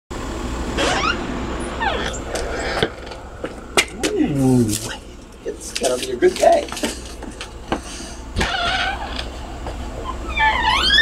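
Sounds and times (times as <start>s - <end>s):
steady low rumble: 0.1s - 11.0s
door creaking: 0.8s - 3.2s, 8.4s - 9.4s, 10.0s - 11.0s.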